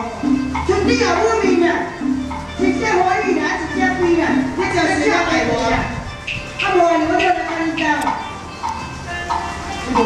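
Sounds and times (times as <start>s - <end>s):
opera instrumental accompaniment: 0.0s - 10.0s.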